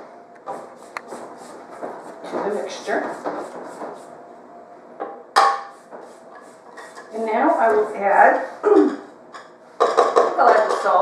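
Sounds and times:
spatula scraping metal bowl: 0:00.5 - 0:04.1, 0:05.6 - 0:08.5.

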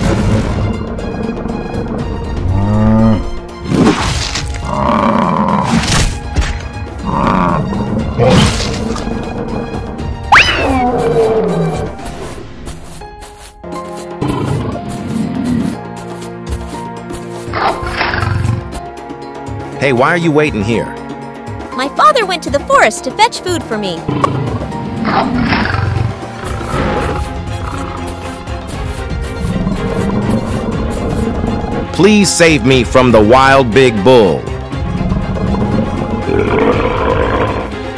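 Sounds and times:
background music: 0:00.0 - 0:37.9
lion roar: 0:01.3 - 0:03.4, 0:04.6 - 0:05.8, 0:07.0 - 0:08.5, 0:14.2 - 0:15.8, 0:17.5 - 0:18.8, 0:24.1 - 0:28.0, 0:29.4 - 0:31.8, 0:34.8 - 0:37.8
big cat roar: 0:04.6 - 0:05.8, 0:07.0 - 0:08.4, 0:34.8 - 0:37.8.

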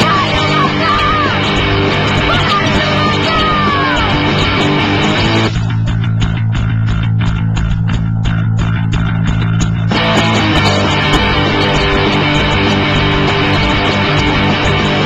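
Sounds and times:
punk rock band playing: 0:00.0 - 0:15.0.

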